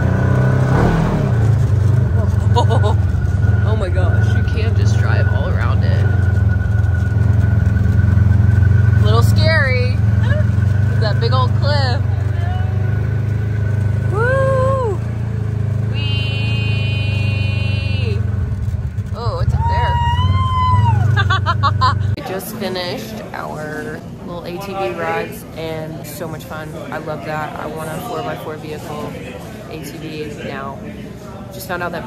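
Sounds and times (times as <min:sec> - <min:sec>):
utility vehicle engine running: 0:00.0 - 0:22.2
people exclaiming: 0:14.0 - 0:15.1, 0:19.2 - 0:22.2
steady high tone: 0:15.9 - 0:18.3.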